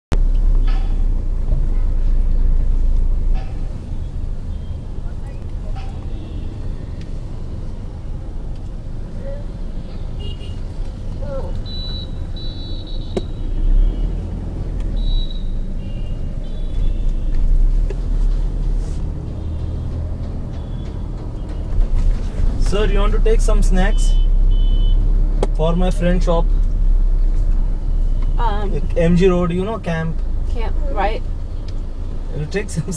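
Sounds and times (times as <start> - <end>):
car rumbling in traffic: 0.1 - 32.9.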